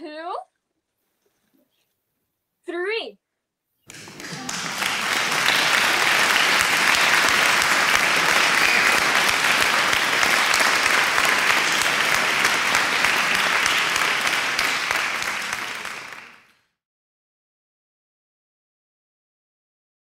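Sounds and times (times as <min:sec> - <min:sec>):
audience applause: 0:03.9 - 0:16.5.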